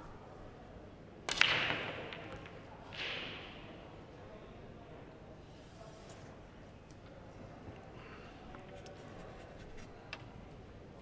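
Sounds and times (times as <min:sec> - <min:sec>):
billiard balls clacking: 0:01.2 - 0:03.7
soft knock of balls: 0:01.3 - 0:03.7
pool cue striking ball: 0:01.3 - 0:03.8.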